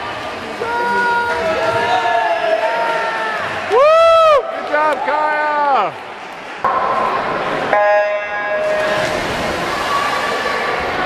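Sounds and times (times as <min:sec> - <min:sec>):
crowd noise: 0:00.0 - 0:11.0
swimmers splashing: 0:04.4 - 0:11.0.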